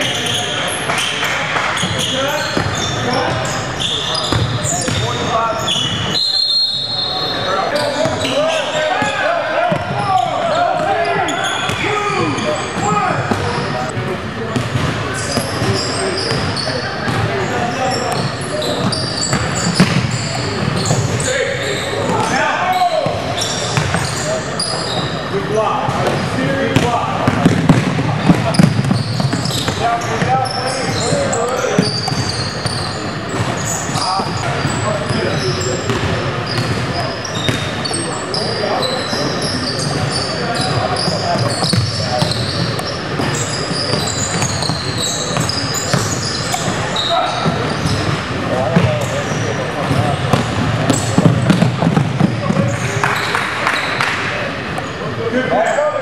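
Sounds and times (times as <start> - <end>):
people talking and calling out: 0.0 - 56.0
basketball bouncing on hardwood: 49.8 - 52.6.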